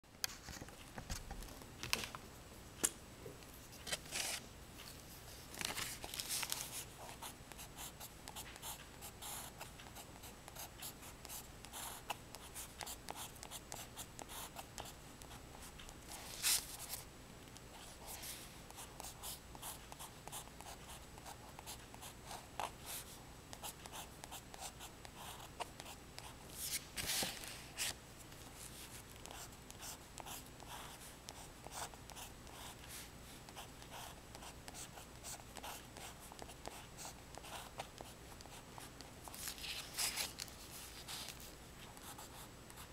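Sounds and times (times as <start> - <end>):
faint steady hiss: 0.1 - 42.9.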